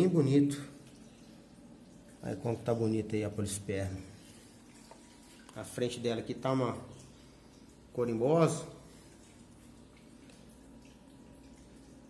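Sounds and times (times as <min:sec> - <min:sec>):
water dripping and trickling: 0:00.0 - 0:12.0.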